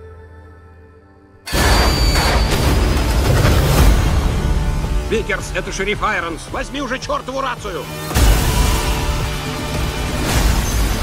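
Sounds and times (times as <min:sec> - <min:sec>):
dense loud trailer music: 0:01.5 - 0:11.0.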